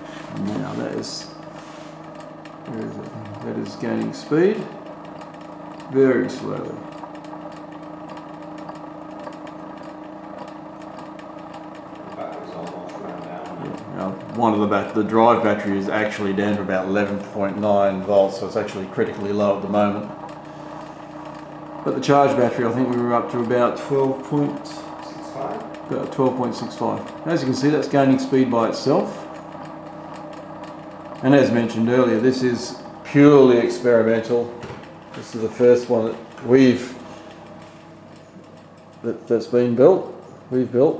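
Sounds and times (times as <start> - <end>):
faint rapid ticking: 0.0 - 40.9
spinning wheel hum: 0.0 - 40.9.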